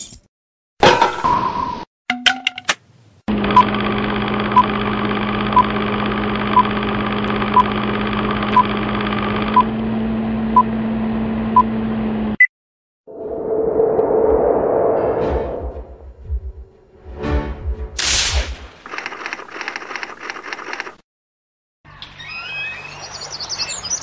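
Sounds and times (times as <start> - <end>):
film projector hum: 3.3 - 11.7, 18.9 - 21.0
rush of noise: 13.1 - 16.7.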